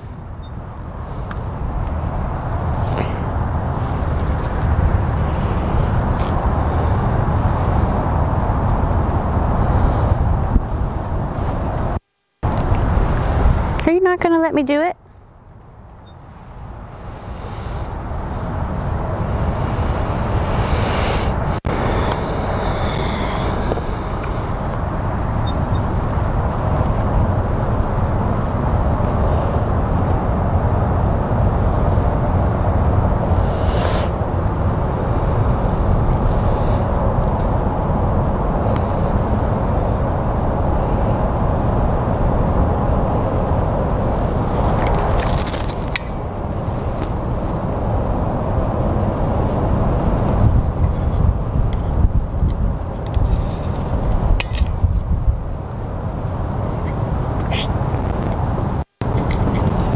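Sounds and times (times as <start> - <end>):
rustles: 0.0 - 8.0, 44.3 - 47.6
low outdoor rumble: 0.0 - 59.9.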